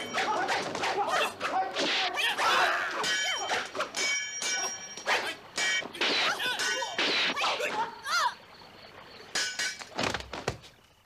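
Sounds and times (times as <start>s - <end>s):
fighters shouting: 0.0s - 8.4s.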